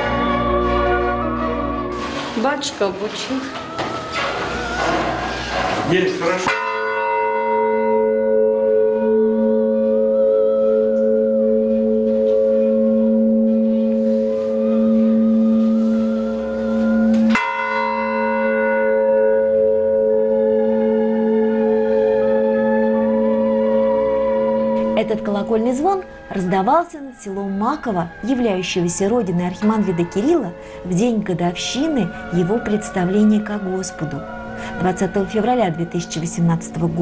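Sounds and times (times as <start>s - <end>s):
large church bell ringing: 5.8s - 37.0s.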